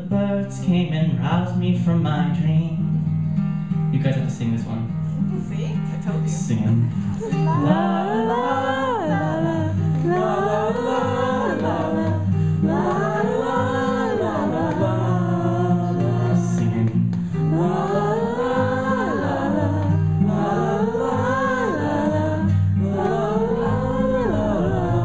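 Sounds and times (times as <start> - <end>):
acoustic guitar strumming: 0.0 - 25.0
people singing la la la: 6.6 - 25.0.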